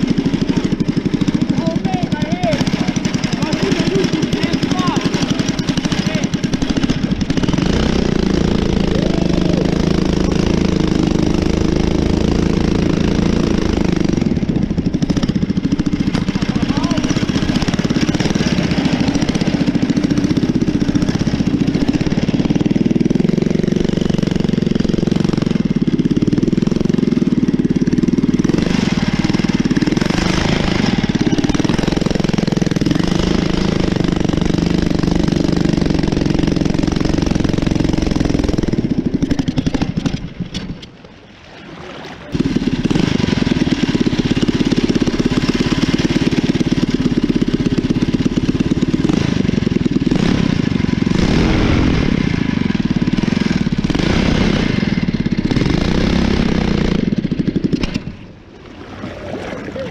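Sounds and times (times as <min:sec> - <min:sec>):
boat engine running at high throttle: 0:00.0 - 0:59.9
water rushing and splashing: 0:39.5 - 0:44.0, 0:58.0 - 0:59.9.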